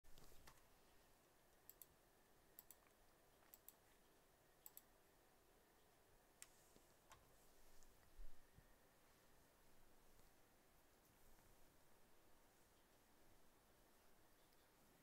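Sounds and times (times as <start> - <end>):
small sharp clicks: 1.5 - 4.0, 4.6 - 4.9.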